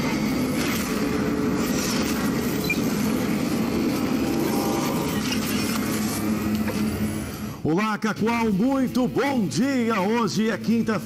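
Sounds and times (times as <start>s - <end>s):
loud rumbling roar: 3.3s - 5.4s.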